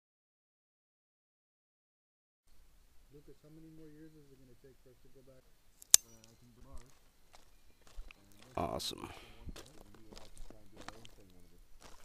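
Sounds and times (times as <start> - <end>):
sharp click with metallic ring: 5.8 - 6.4.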